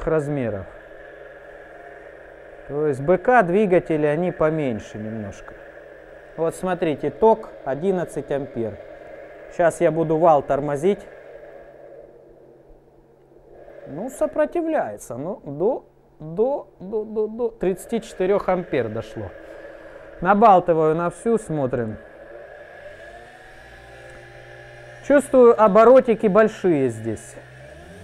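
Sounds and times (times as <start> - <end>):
electric motor humming: 0.0 - 28.0.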